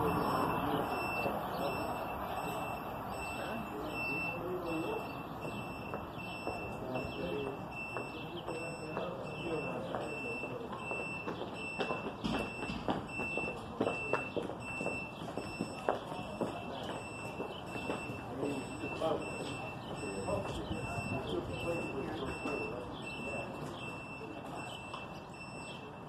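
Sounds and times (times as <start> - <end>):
electronic beeper beeping: 0.0 - 26.0
faint voices: 0.0 - 26.0.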